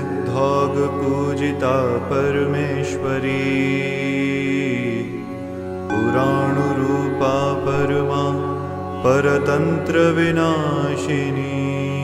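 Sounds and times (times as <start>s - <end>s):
person chanting with wavering notes: 0.0s - 12.0s
steady drone: 0.0s - 12.0s.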